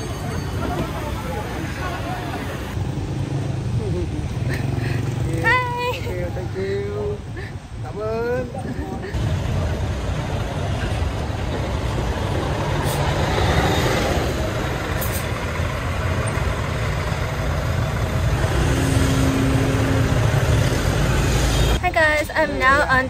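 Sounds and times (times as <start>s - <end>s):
bus engine rumbling: 0.0s - 23.0s
motorbikes moving: 0.0s - 23.0s.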